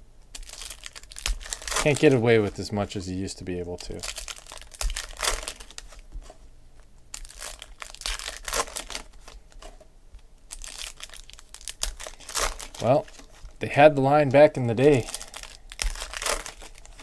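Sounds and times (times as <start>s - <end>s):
foil wrapper tearing and crinkling: 0.3s - 2.6s, 3.9s - 6.0s, 7.1s - 9.6s, 10.5s - 13.5s, 14.8s - 17.0s
person speaking: 1.8s - 4.1s, 12.8s - 15.3s.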